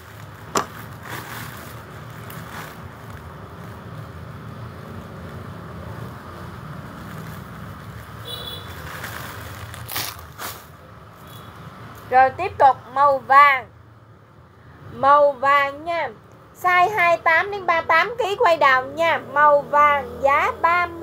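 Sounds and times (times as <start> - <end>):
clothes rustling: 0.0 - 3.8, 8.7 - 10.8.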